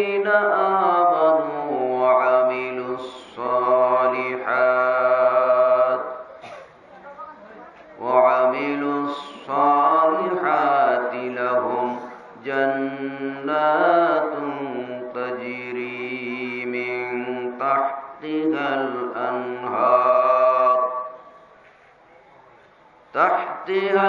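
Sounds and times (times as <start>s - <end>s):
man chanting melodically: 0.0s - 6.4s, 8.0s - 21.4s, 23.1s - 24.0s.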